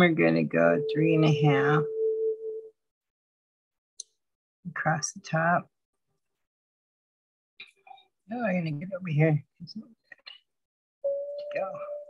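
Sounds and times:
person speaking: 0.0s - 1.9s.

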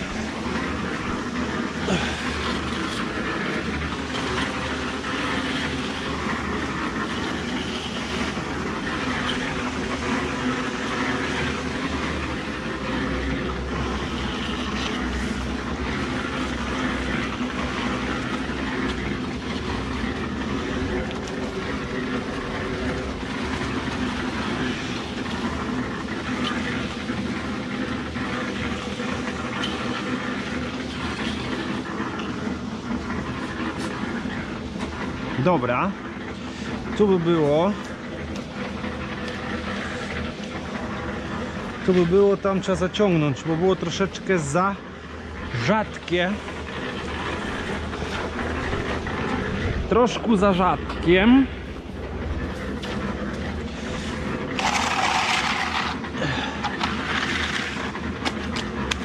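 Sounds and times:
concrete mixer rattling drone: 0.0s - 59.0s
straightedge scraping wet concrete: 0.0s - 59.0s.

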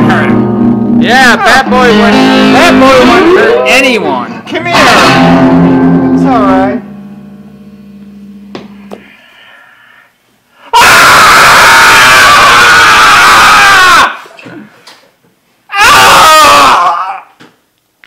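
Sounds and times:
person screaming: 10.7s - 14.3s, 15.7s - 17.4s.

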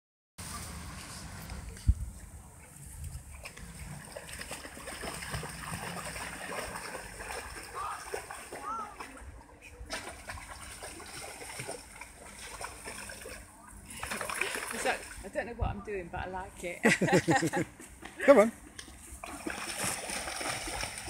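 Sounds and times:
dog splashing through water: 3.3s - 9.3s, 9.9s - 15.2s, 19.2s - 21.0s.

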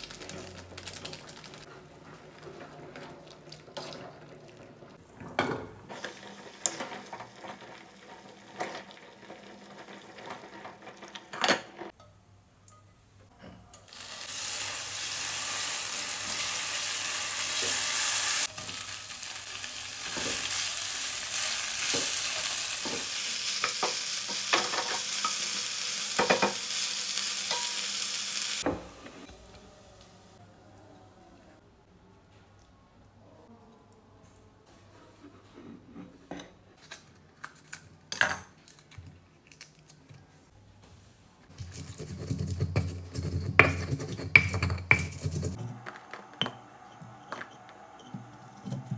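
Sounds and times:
chili sizzling in hot oil: 5.9s - 11.4s, 13.9s - 28.7s.

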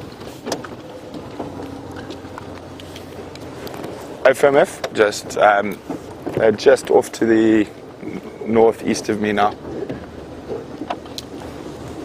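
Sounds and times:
faint clicks and rattles: 0.0s - 8.0s
vehicle engine humming: 0.0s - 12.0s.

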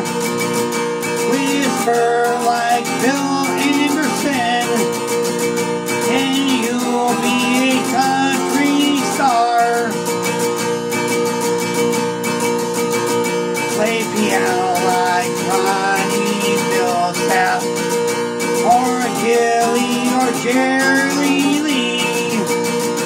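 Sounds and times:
acoustic guitar strumming: 0.0s - 23.0s
man singing country song: 1.0s - 11.0s, 12.2s - 23.0s.

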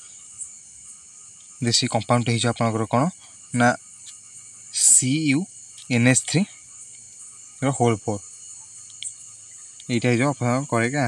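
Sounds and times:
high-pitched background buzz: 0.0s - 11.0s.

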